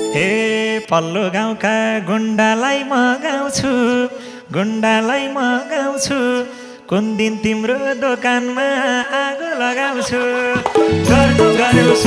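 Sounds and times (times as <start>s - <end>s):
man singing unaccompanied: 0.0s - 12.0s.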